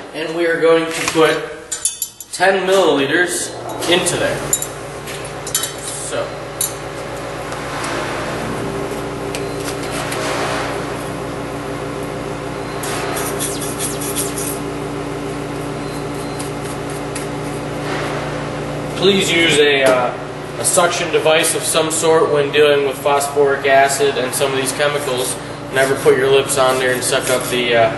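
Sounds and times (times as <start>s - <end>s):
low mechanical hum: 0.0s - 27.9s.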